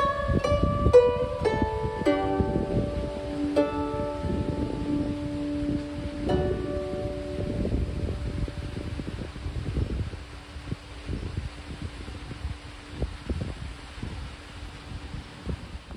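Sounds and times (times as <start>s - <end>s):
plucked zither notes ringing: 0.0s - 9.0s
wind buffeting microphone: 0.0s - 15.9s.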